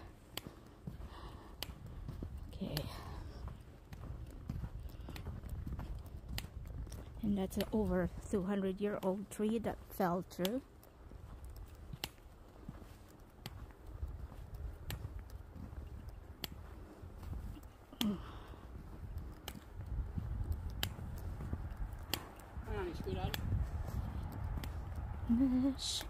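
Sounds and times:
wind rumble: 0:00.0 - 0:08.4, 0:10.8 - 0:26.0
footsteps crunching on snow: 0:00.0 - 0:26.0.

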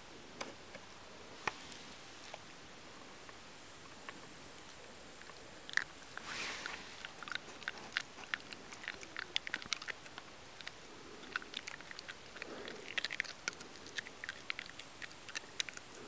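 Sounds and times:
fox chewing food: 0:00.4 - 0:16.0.

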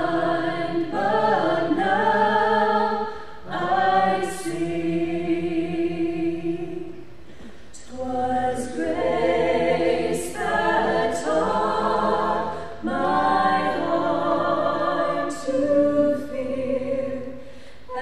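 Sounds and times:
women singing a cappella: 0:00.0 - 0:07.2, 0:07.8 - 0:18.0.

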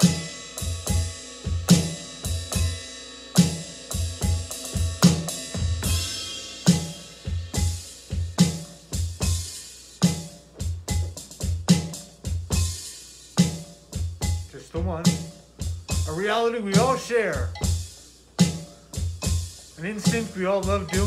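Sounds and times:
bass drum thumps: 0:10.1 - 0:12.8, 0:13.4 - 0:16.2, 0:16.8 - 0:21.0.

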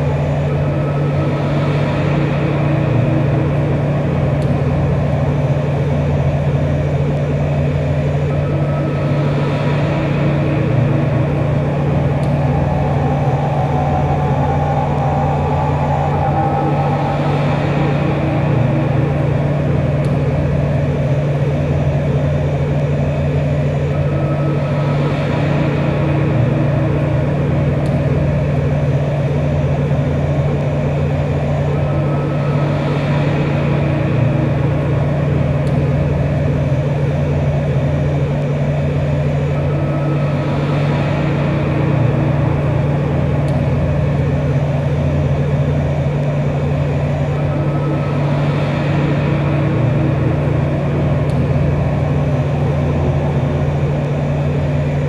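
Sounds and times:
droning noise music: 0:00.0 - 0:55.0
steady low hum: 0:00.0 - 0:55.0.

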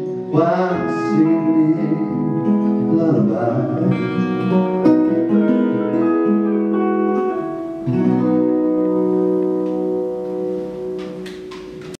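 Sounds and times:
acoustic guitar playing: 0:00.0 - 0:11.9
electric guitar playing: 0:00.0 - 0:11.9.

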